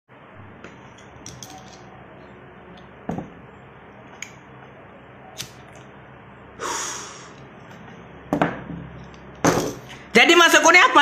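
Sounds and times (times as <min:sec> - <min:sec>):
man's breathy exhale: 0:06.6 - 0:07.4.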